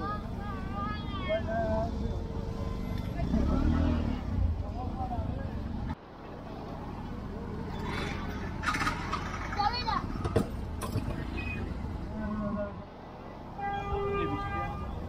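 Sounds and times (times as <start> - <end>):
people talking: 0.0 - 6.0, 9.4 - 12.8
motor vehicle traffic: 0.0 - 15.0.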